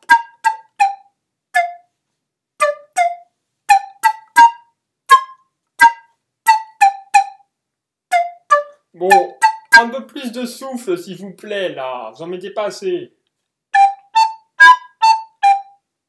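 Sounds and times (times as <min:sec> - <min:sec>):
flute playing short notes: 0:08.1 - 0:10.1, 0:13.8 - 0:15.7.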